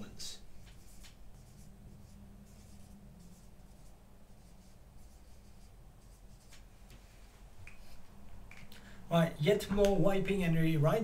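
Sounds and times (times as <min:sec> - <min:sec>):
marker writing on whiteboard: 0:00.4 - 0:08.1.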